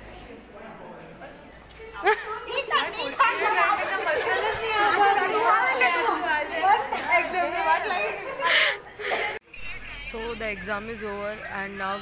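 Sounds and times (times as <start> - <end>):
women chattering: 1.7 - 12.0.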